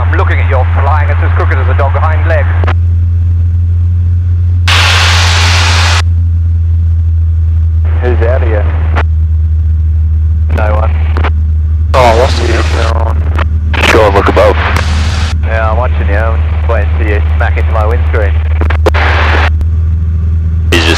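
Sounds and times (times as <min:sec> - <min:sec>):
voices: 0:00.0 - 0:02.7, 0:07.9 - 0:09.0, 0:10.5 - 0:11.3, 0:12.0 - 0:14.8, 0:15.4 - 0:19.4
aircraft engine droning: 0:00.0 - 0:20.9
radio static hiss: 0:04.7 - 0:06.0, 0:07.9 - 0:09.0, 0:10.5 - 0:11.3, 0:12.0 - 0:19.6.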